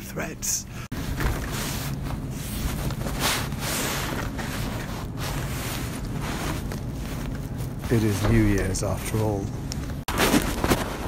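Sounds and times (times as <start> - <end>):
supermarket low hum: 0.0 - 11.0.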